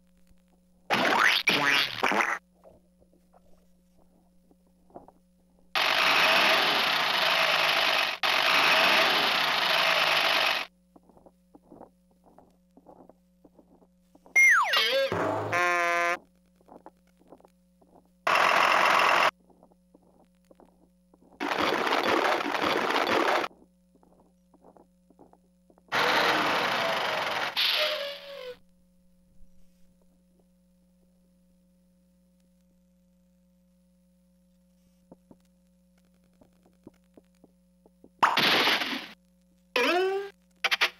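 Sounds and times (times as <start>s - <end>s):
toy electronic sound effects: 14.4s - 16.2s, 25.9s - 28.6s.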